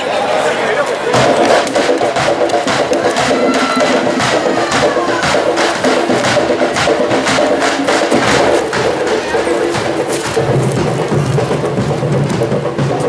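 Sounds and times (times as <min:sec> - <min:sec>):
hand drums driving rhythm: 0:01.1 - 0:13.0.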